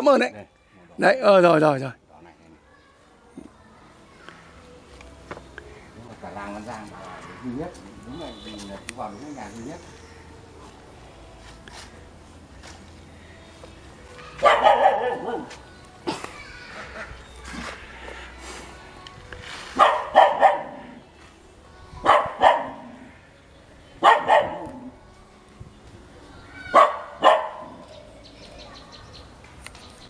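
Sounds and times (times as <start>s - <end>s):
dog barking: 14.4s - 15.5s, 19.8s - 20.9s, 22.0s - 22.9s, 24.0s - 24.8s, 26.7s - 27.8s.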